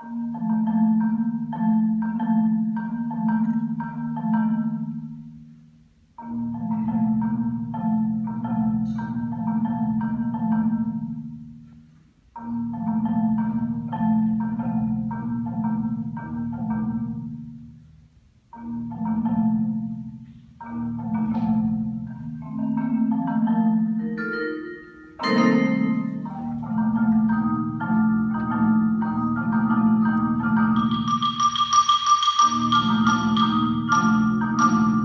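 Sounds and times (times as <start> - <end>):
marimbas playing chords: 0.0 - 35.0.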